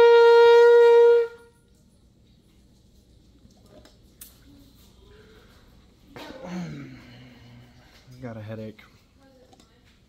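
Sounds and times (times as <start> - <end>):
trumpet holding high note: 0.0 - 1.6.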